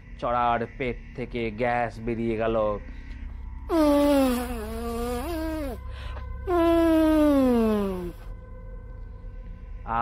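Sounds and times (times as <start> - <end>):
buzzy fart sounds: 3.7 - 5.8, 6.5 - 8.2.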